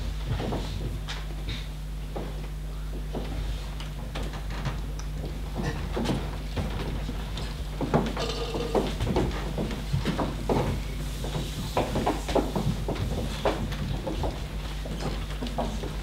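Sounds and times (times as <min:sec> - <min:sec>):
footsteps on stage floor: 0:00.0 - 0:16.0
low hall hum: 0:00.0 - 0:16.0.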